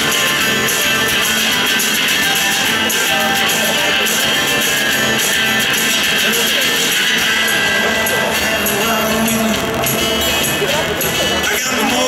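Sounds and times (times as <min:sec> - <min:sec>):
electric guitar: 0:00.0 - 0:12.0
live rock band: 0:00.0 - 0:12.0.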